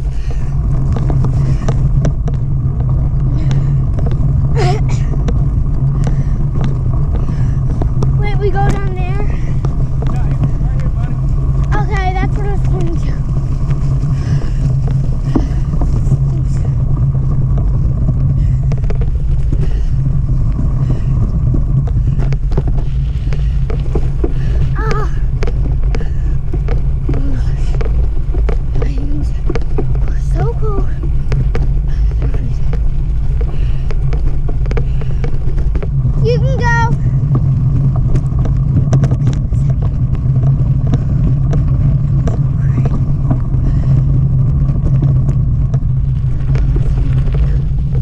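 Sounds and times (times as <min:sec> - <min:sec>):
bike tyres over grass: 0:00.0 - 0:48.0
wind buffeting microphone: 0:00.0 - 0:48.0.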